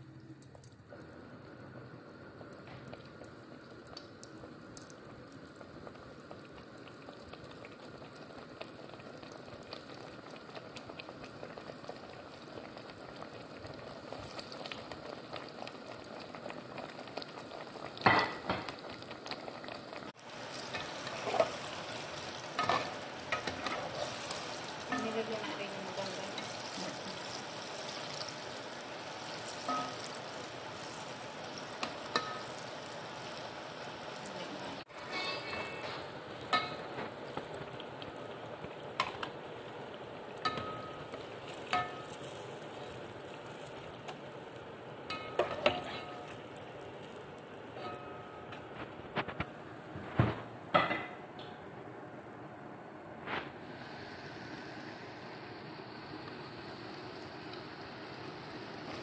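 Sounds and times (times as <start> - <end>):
vegetables sizzling in hot oil: 0.0 - 49.4, 53.6 - 59.0
metal spoon clinking against pot: 35.1 - 36.8, 41.7 - 42.2.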